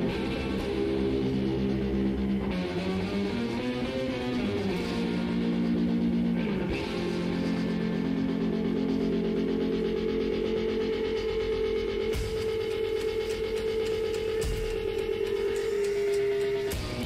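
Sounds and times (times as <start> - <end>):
electric guitar droning note: 0.0 - 17.0
drum beat: 12.2 - 17.0.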